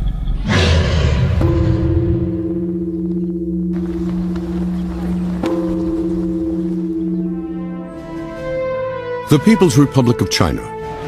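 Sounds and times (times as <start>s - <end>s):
heavy hit: 0.0s - 4.1s
low pulsing ringing drone: 1.4s - 8.9s.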